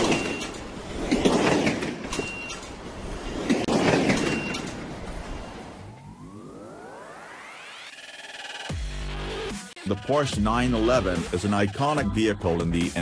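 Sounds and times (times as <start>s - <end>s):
rising multi-tone sweep: 4.3s - 9.6s.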